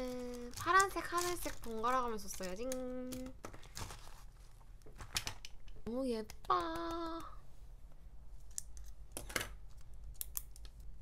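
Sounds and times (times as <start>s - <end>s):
plastic pen clicks: 9.8s - 10.9s.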